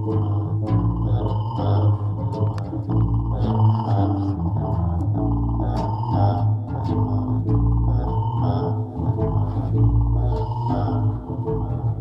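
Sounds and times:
electric bass sustained notes: 0.0s - 12.0s
granular synthesizer bright tones: 0.0s - 12.0s.

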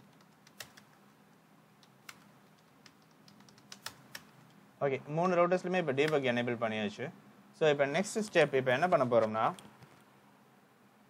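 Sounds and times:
keyboard keystrokes: 0.0s - 1.0s, 1.8s - 4.3s.

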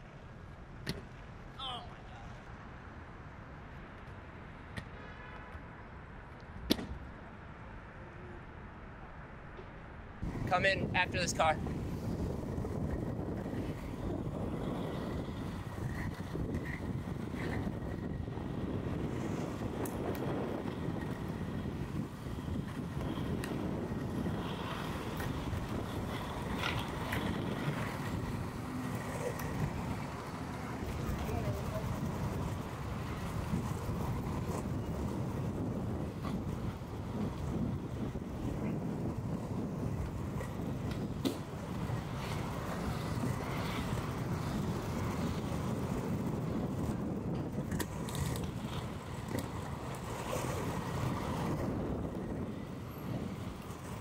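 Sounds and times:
skate wheels rolling on asphalt: 8.7s - 54.0s
wind on microphone: 10.2s - 54.0s.

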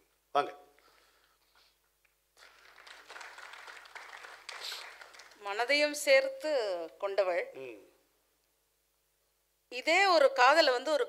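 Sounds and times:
audience applause: 2.4s - 5.4s.

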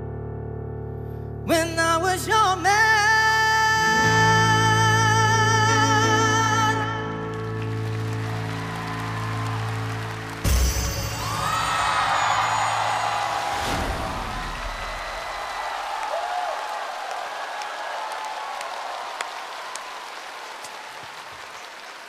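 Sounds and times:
studio audience applauding: 6.7s - 22.0s
audience shouts: 8.4s - 22.0s.

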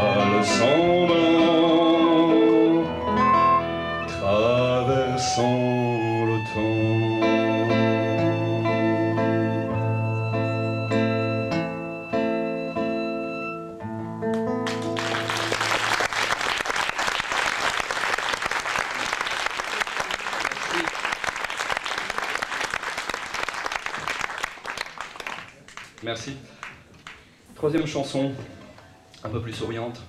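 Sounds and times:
acoustic guitar chords: 0.0s - 15.6s
audience applause: 14.6s - 27.2s.

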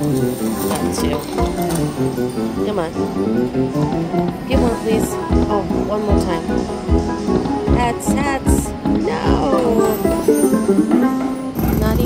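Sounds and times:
slot machine electronic tune: 0.0s - 3.8s, 4.4s - 12.0s.

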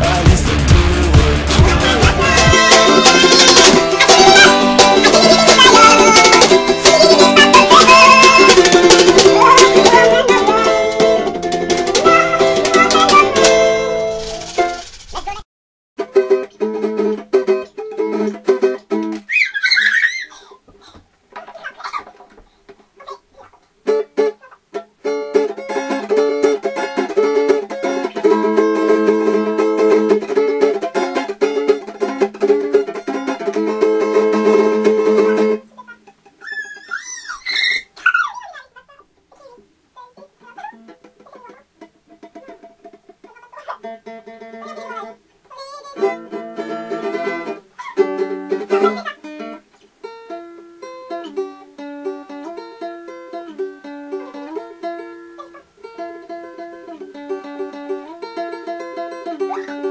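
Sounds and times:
acoustic guitar strumming chords: 0.0s - 14.1s, 16.0s - 19.2s, 23.8s - 35.8s, 43.8s - 45.3s, 46.0s - 59.9s
acoustic guitar playing: 0.0s - 14.8s, 16.0s - 19.3s, 22.8s - 36.5s, 39.0s - 59.9s.

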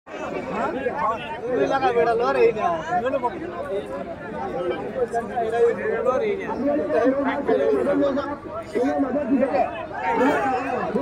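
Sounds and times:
crowd chattering and calling out: 0.1s - 11.0s.

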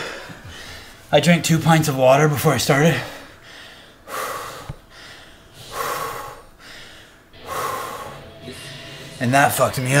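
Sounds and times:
man breathing hard: 0.0s - 1.1s, 2.9s - 9.2s.

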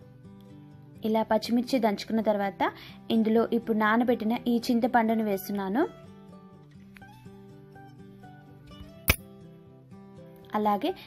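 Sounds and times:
soft plucked background music: 0.0s - 11.0s.

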